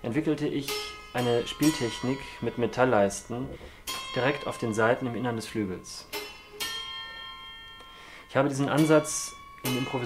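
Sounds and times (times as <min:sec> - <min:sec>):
ringing piano strings: 0:00.0 - 0:10.0
metal bar striking piano strings: 0:00.4 - 0:07.8, 0:08.5 - 0:10.0.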